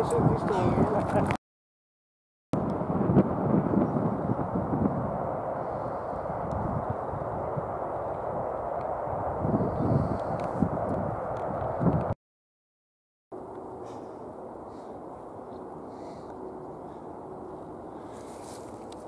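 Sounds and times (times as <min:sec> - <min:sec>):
wind rumbling on microphone: 0:00.0 - 0:01.4, 0:02.6 - 0:12.2.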